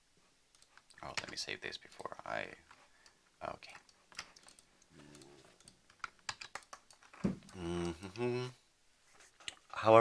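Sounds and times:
computer keyboard clicks: 3.8 - 7.1.

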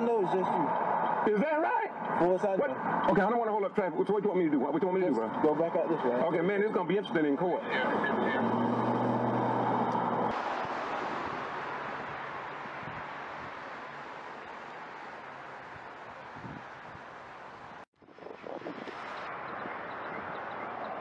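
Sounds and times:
even rushing noise: 7.2 - 20.4.

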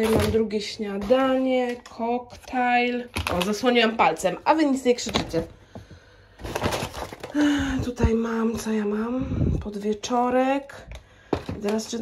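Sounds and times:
plastic food containers rustling: 0.0 - 8.7, 10.9 - 12.0
paper bag crinkling: 6.4 - 8.1.

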